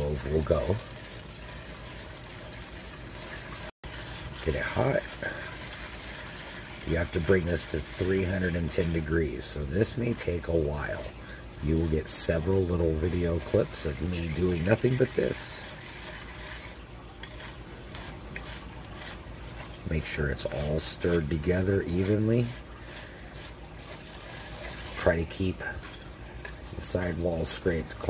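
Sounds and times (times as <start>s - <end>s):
soft steady hiss: 0.0s - 28.0s
whisk stirring syrup in a pan: 0.0s - 28.0s
whisk clicking against pan: 12.9s - 19.8s.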